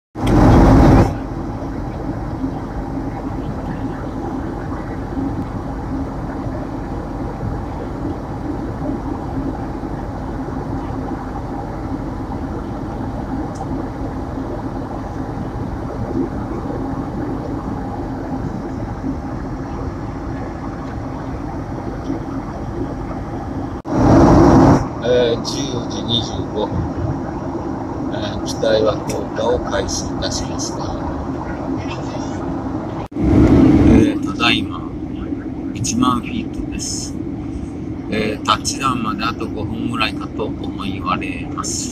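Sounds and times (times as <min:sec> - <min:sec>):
airliner cabin jet engine drone: 0:00.2 - 0:41.9
faint low hum: 0:00.2 - 0:41.9
loud burst of noise: 0:00.2 - 0:41.9.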